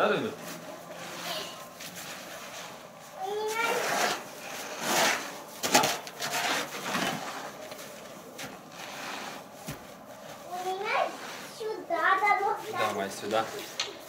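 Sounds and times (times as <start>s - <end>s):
shovels scraping snow: 0.4s - 13.8s
child's voice: 1.2s - 1.7s, 3.2s - 4.2s, 10.4s - 14.0s.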